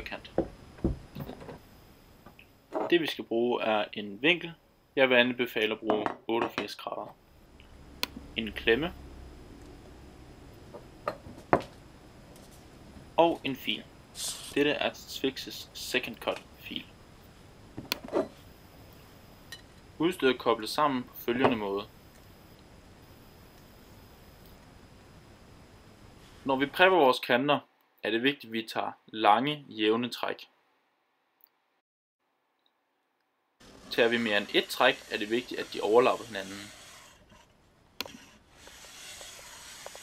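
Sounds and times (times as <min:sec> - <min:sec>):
file rasping along ski edge: 0:34.1 - 0:40.0.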